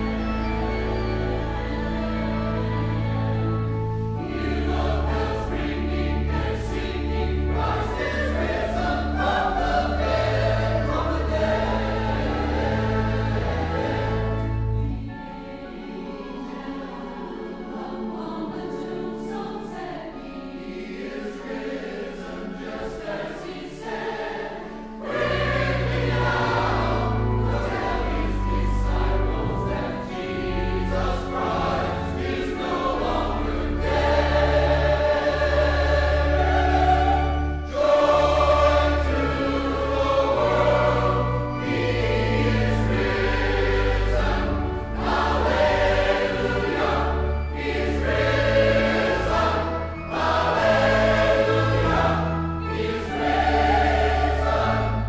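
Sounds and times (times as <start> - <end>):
choir singing slow hymn: 0.0 - 55.0.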